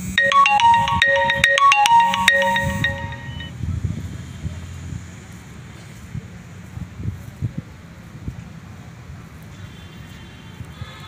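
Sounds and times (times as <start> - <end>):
marimba-like phone ringtone: 0.0 - 3.5.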